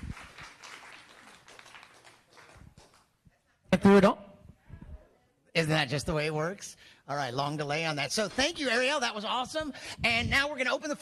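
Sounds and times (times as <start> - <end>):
audience applauding: 0.0 - 3.1.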